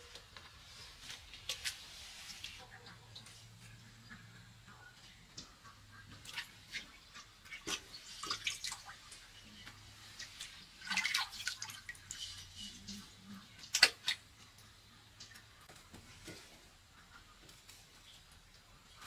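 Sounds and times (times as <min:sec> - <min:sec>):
water dripping and splashing: 0:05.0 - 0:16.5.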